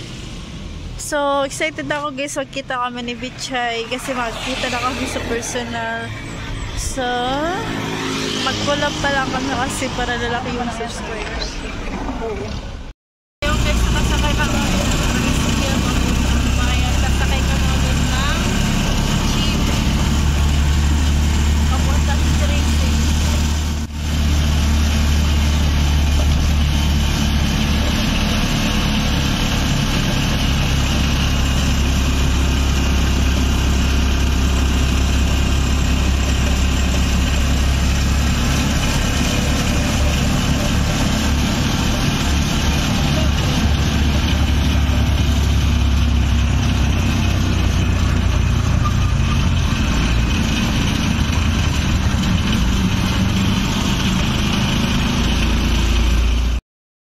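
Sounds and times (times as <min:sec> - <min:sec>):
road and wind noise: 0:00.0 - 0:56.6
small motorcycle engine running: 0:13.4 - 0:56.6.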